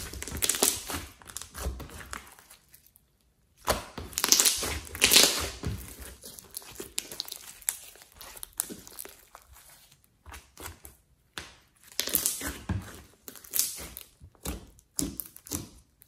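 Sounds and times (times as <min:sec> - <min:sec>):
slime squelching and crackling: 0:00.0 - 0:16.0.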